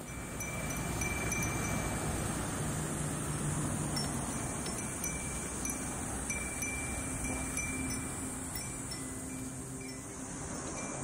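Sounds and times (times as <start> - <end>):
glass wind bells ringing: 0.0 - 11.0
steady low rumble: 0.0 - 11.0.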